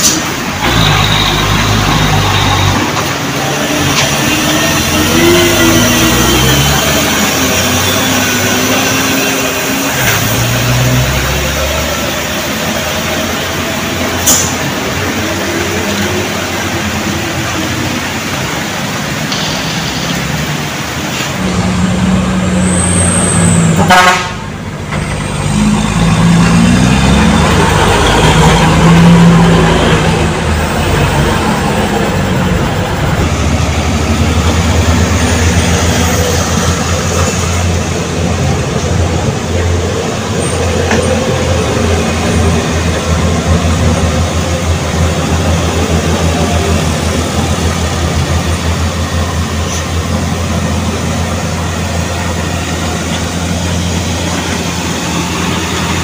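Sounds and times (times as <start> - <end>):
truck engines droning: 0.0 - 56.0
truck horn toots: 23.2 - 24.6.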